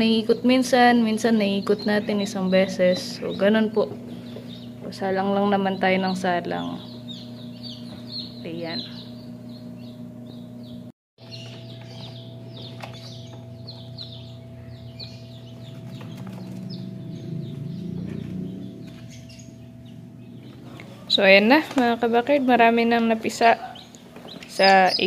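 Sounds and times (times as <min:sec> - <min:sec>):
chicks peeping: 0:00.0 - 0:25.0
steady low hum: 0:00.0 - 0:25.0.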